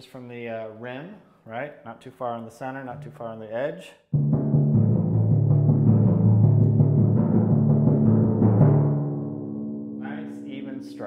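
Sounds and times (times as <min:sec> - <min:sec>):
timpani strokes: 0:04.1 - 0:11.0.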